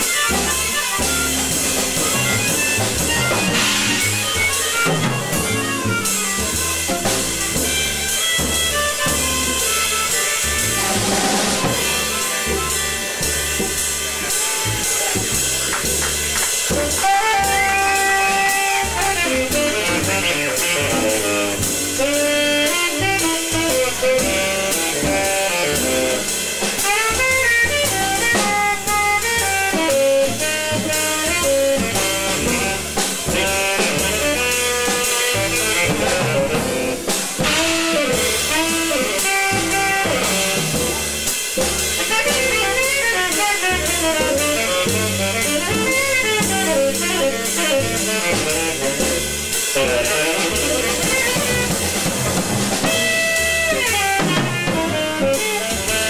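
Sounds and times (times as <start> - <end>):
bass: 0.0 - 56.0
drum kit: 0.0 - 56.0
saxophone and trumpet melody: 0.0 - 56.0.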